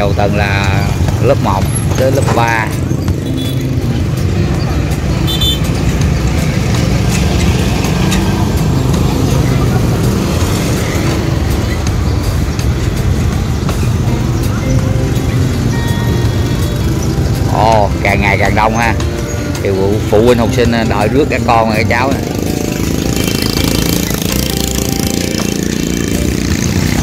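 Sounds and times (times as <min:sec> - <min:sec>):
motorbike engines idling and pulling away: 0:00.0 - 0:27.0.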